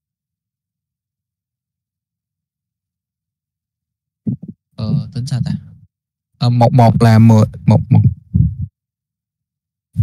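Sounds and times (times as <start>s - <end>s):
man muttering: 4.8s - 5.6s, 7.5s - 8.3s.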